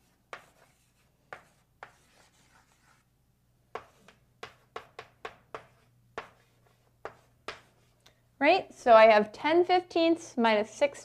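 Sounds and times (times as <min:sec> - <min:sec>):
chalk tapping on blackboard: 0:00.0 - 0:03.0, 0:03.7 - 0:08.0
chalk scratching on blackboard: 0:00.0 - 0:03.1, 0:03.7 - 0:08.0.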